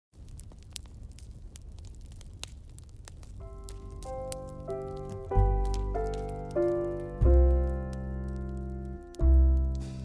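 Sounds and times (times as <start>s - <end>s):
wood fire crackling: 0.1s - 10.0s
held keyboard notes: 3.4s - 10.0s.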